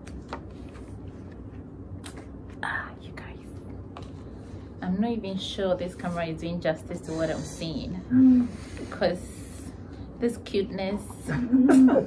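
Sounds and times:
low steady hum: 0.0s - 12.0s
person whispering: 2.6s - 3.7s.

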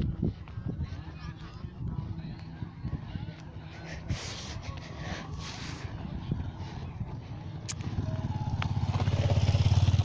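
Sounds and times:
motorcycle engine passing by: 7.8s - 10.0s.

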